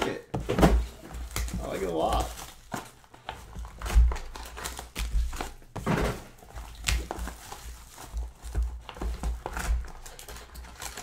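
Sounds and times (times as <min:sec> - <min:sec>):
foil packs crinkling: 0:00.1 - 0:11.0.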